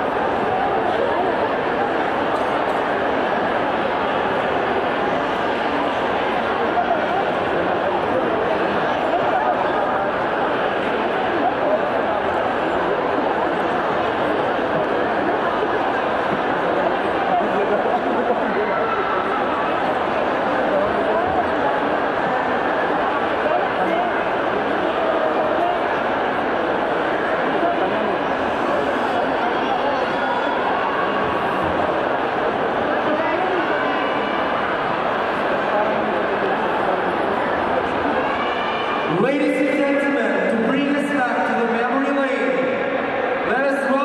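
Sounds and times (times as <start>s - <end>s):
crowd chatter: 0.0s - 44.0s.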